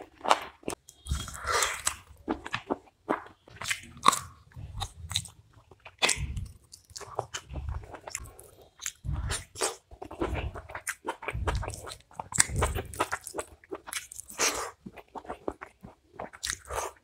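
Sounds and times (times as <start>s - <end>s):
chewing food: 0.0s - 17.0s.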